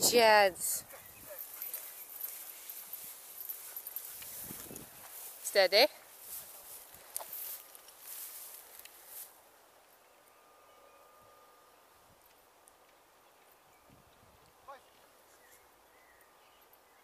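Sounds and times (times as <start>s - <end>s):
footsteps through long grass: 0.8s - 9.5s.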